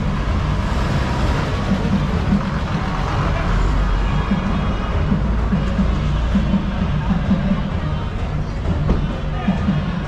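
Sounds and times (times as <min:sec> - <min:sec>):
bus engine rumbling: 0:00.0 - 0:10.0.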